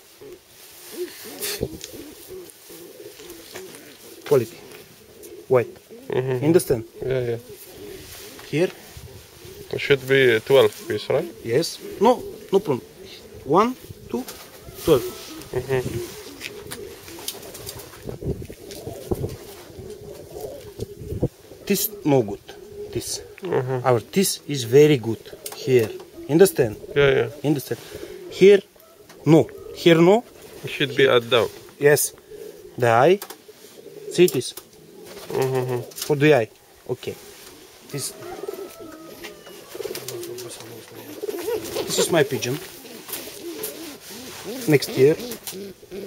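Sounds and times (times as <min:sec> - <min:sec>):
pigeons cooing: 0:00.0 - 0:46.0.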